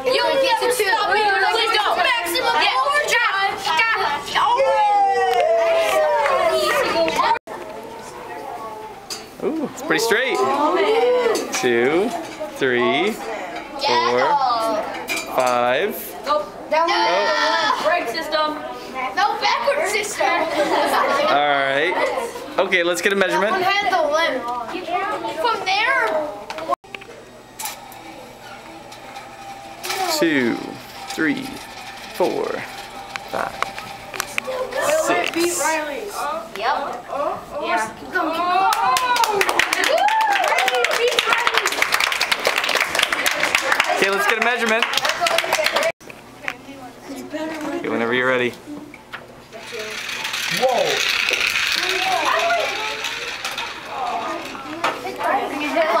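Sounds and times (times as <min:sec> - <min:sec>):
children exclaiming: 0:00.0 - 0:09.0, 0:10.4 - 0:11.5
children murmuring: 0:00.0 - 0:15.3, 0:16.0 - 0:22.6, 0:23.4 - 0:39.5, 0:48.7 - 0:56.0
toy car rolling on tile floor: 0:27.6 - 0:35.8, 0:49.6 - 0:56.0.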